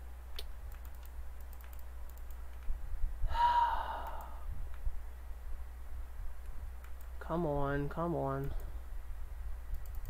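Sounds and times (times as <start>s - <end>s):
steady low hum: 0.0s - 10.0s
keyboard and mouse clicks: 0.3s - 2.8s, 6.8s - 7.2s, 9.7s - 10.0s
short breathy sound: 3.2s - 4.5s.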